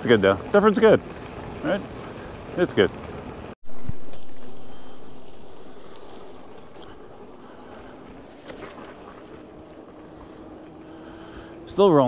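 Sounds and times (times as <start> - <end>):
faint steady hum: 1.1 - 12.0.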